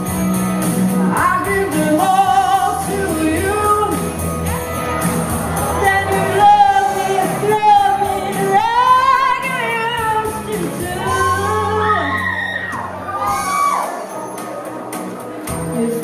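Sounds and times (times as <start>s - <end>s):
pop-rock song: 0.0s - 16.0s.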